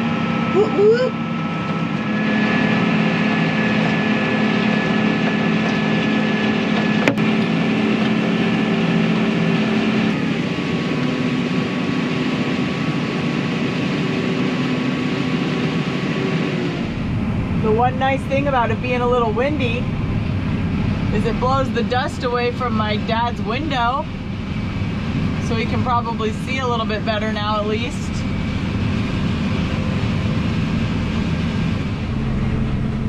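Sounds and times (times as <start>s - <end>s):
tractor engine running under load: 0.0s - 33.0s.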